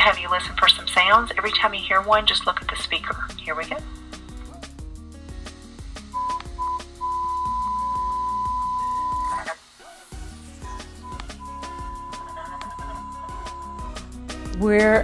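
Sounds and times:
background music with beat: 0:00.0 - 0:15.0
short beeps: 0:06.2 - 0:09.6, 0:10.7 - 0:12.3, 0:13.0 - 0:13.9
steady mid-pitched tone: 0:06.2 - 0:09.6.

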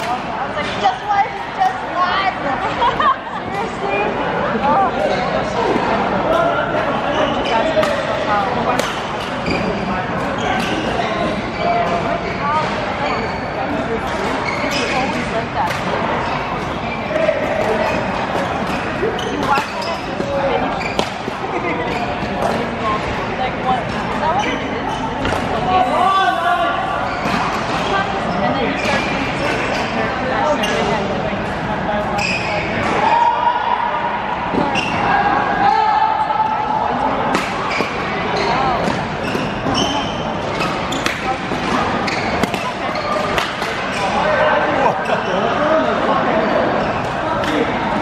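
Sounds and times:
sneakers squeaking on court: 0:09.1 - 0:12.0, 0:12.7 - 0:15.2, 0:16.2 - 0:22.7, 0:37.5 - 0:44.3
rackets striking shuttlecock: 0:40.5 - 0:44.0.

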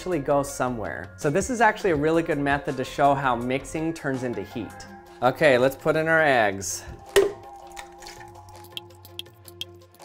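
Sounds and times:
background music: 0:00.0 - 0:10.0
plastic knock of blender jar: 0:07.2 - 0:07.4.

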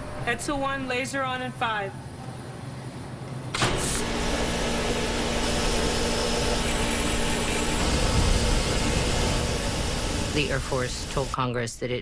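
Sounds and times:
laser rushing noise with low hum: 0:03.7 - 0:11.4.

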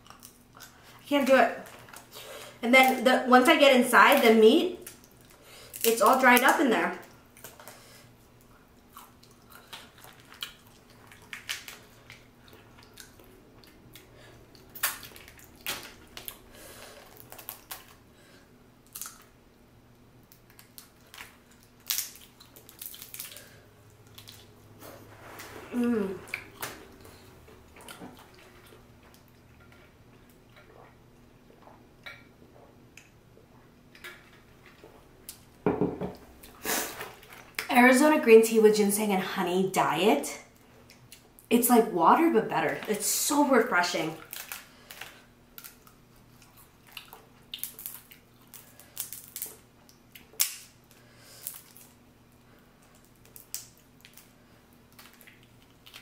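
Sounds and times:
crawfish shells cracking: 0:20.2 - 0:24.5, 0:44.1 - 0:52.0, 0:52.8 - 0:54.3.

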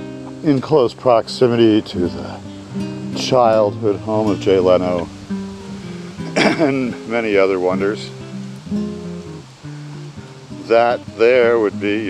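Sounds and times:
acoustic guitar held notes: 0:00.0 - 0:12.0.

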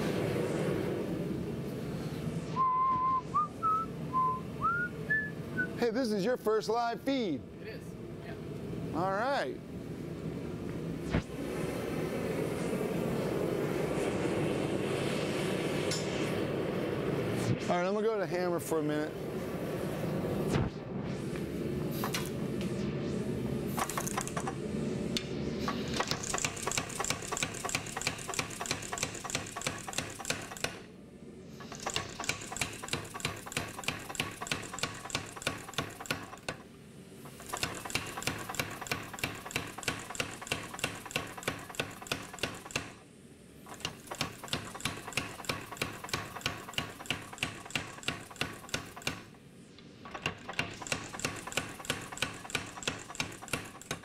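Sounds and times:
power hammer striking steel: 0:25.7 - 0:30.9, 0:31.6 - 0:36.6, 0:37.3 - 0:43.0, 0:43.7 - 0:49.4, 0:50.0 - 0:54.0.

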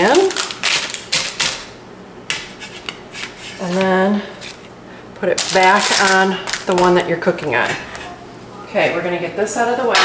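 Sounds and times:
parchment paper rustling and crinkling: 0:05.3 - 0:08.2.

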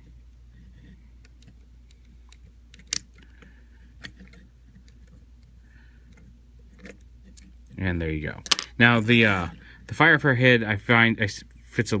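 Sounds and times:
plastic parts clicking and scraping: 0:00.6 - 0:07.7.

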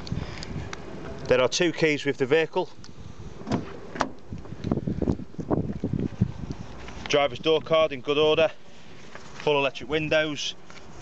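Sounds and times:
car door latch clicks: 0:03.4 - 0:04.3.

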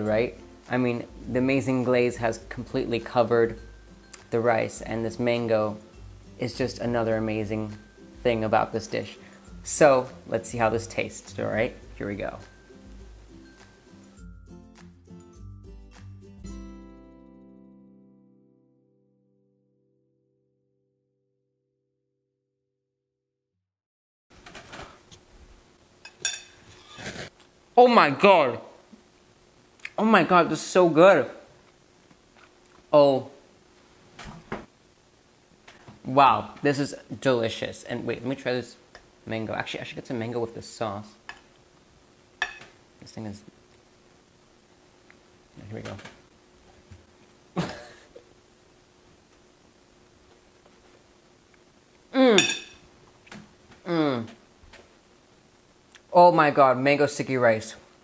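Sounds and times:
metal spoon clinking on plate: 0:26.1 - 0:26.6, 0:42.4 - 0:42.7, 0:52.4 - 0:52.8
man humming mmm while chewing: 0:52.1 - 0:52.5, 0:53.8 - 0:54.4.

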